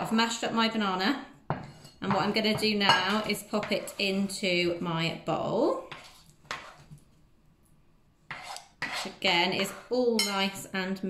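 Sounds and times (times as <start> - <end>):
scraping off chopping board: 5.9 - 7.0, 8.3 - 10.0.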